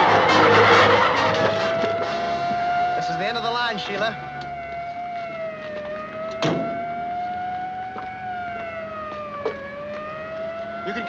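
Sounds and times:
police siren wailing: 0:00.0 - 0:11.0.

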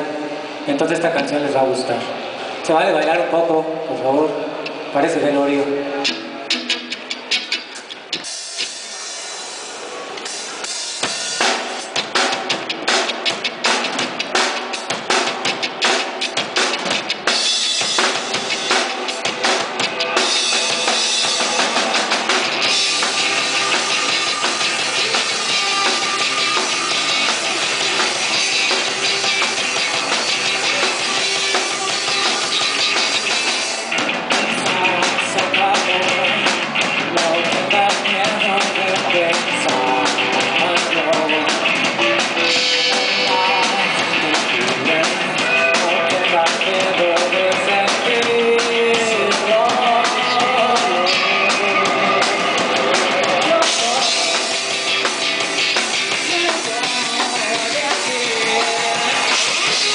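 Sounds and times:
bass guitar: 0:00.0 - 0:59.9
drum kit: 0:05.6 - 0:59.9
electric guitar: 0:05.6 - 0:59.9
acoustic-electric guitar: 0:11.9 - 0:59.9.

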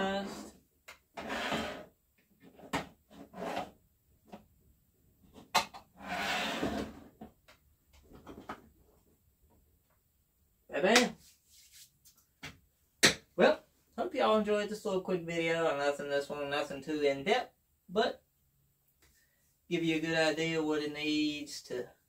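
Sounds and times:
man speaking: 0:00.0 - 0:00.5, 0:10.7 - 0:11.2, 0:13.4 - 0:18.2, 0:19.7 - 0:22.0.

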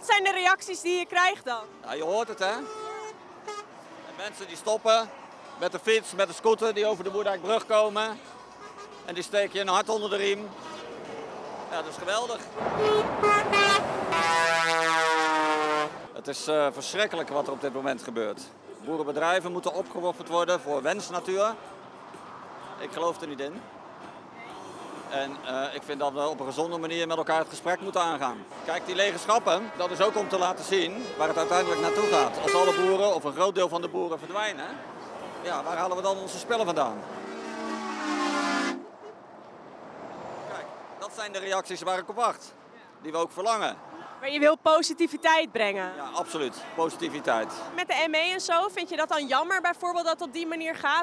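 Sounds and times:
truck air horn honking: 0:02.3 - 0:03.8, 0:08.4 - 0:09.2, 0:10.5 - 0:11.0, 0:12.6 - 0:16.1, 0:29.5 - 0:33.0, 0:37.1 - 0:38.9.

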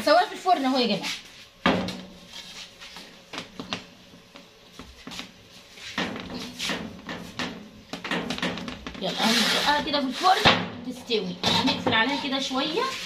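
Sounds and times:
metal baking tray clattering: 0:06.0 - 0:12.8.

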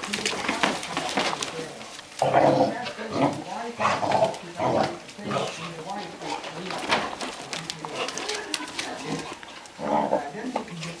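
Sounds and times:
dogs play-fighting: 0:00.0 - 0:11.0
dog growling: 0:02.2 - 0:10.5.

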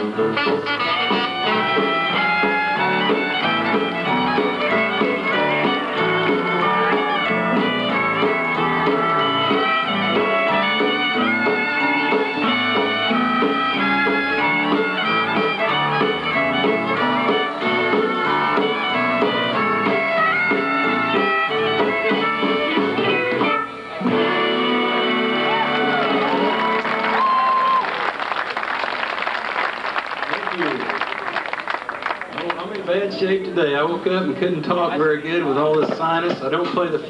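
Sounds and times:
western swing band playing: 0:00.0 - 0:37.0
audience clapping: 0:25.4 - 0:33.1.

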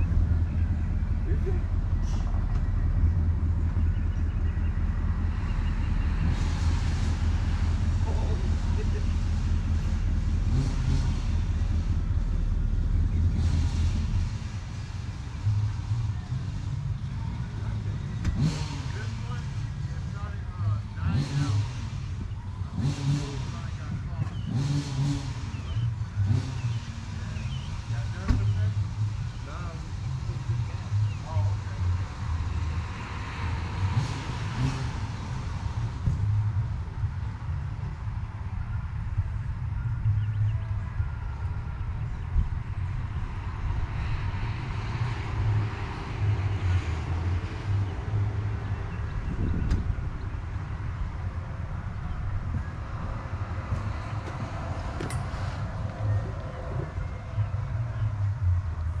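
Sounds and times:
off-road vehicle engine revving: 0:00.0 - 0:59.0.

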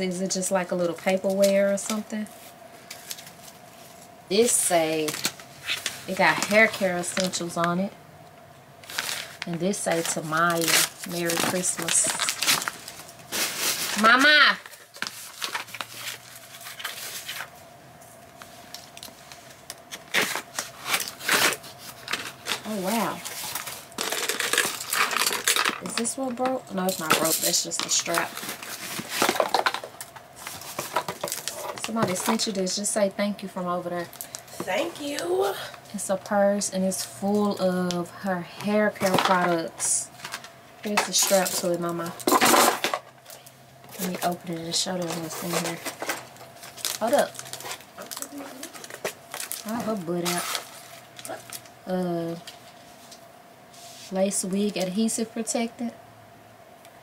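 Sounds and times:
paper packaging rustling: 0:02.4 - 0:07.5, 0:08.8 - 0:17.6, 0:18.7 - 0:34.8, 0:38.7 - 0:51.7.

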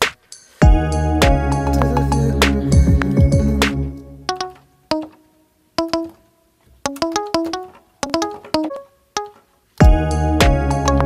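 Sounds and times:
plucked guitar-like notes: 0:00.6 - 0:05.2, 0:05.8 - 0:06.2, 0:06.8 - 0:11.0.

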